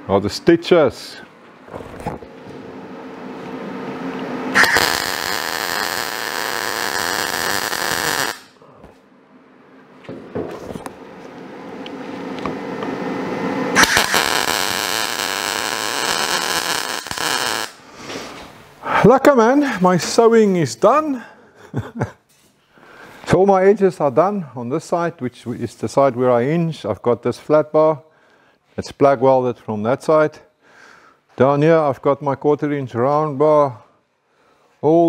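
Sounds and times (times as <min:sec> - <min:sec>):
welding arc crackling: 0:04.5 - 0:08.6, 0:13.8 - 0:17.9.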